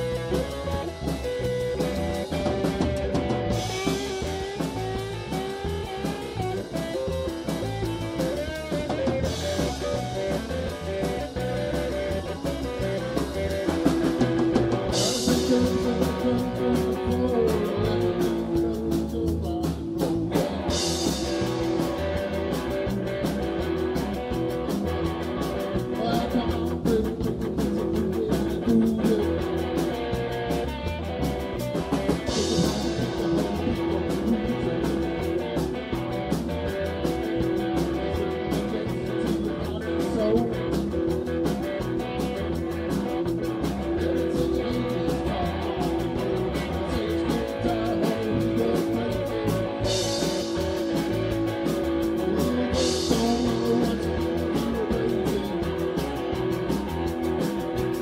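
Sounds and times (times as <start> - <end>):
rock band playing: 0.0 - 58.0.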